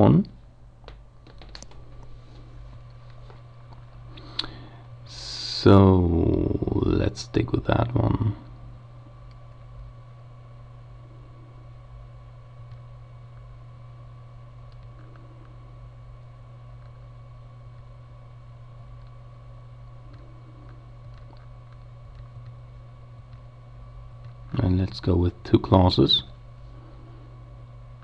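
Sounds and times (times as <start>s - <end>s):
steady low hum: 0.0s - 28.0s
computer mouse clicks: 14.7s - 15.6s, 20.1s - 22.6s.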